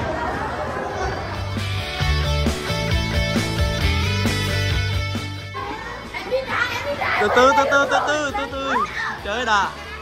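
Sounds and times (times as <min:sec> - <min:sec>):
children talking and calling out: 0:00.0 - 0:02.0, 0:05.2 - 0:10.0
background music: 0:01.2 - 0:10.0.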